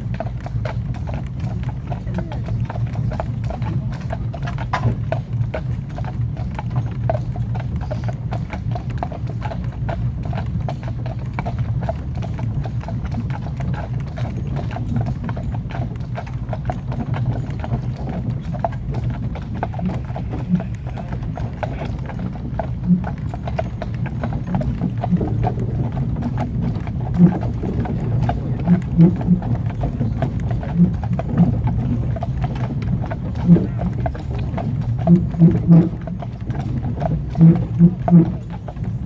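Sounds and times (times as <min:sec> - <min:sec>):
hooves clip-clopping on tarmac: 0:00.0 - 0:39.0
low rumble: 0:08.4 - 0:39.0.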